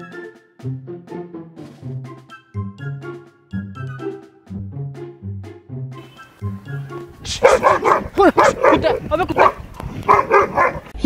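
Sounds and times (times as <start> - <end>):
person imitating dog barking: 7.2 - 9.6.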